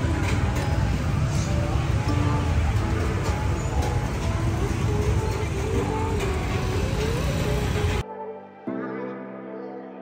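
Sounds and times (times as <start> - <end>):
motorbike and traffic rumble: 0.0 - 8.0.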